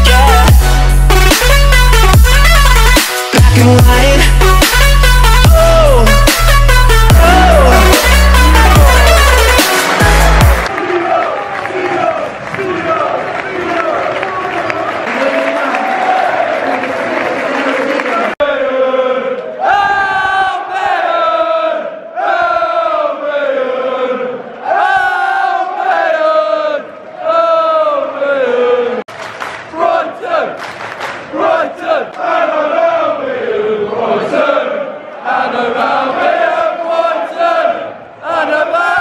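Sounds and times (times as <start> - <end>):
football crowd chanting: 7.1 - 39.0.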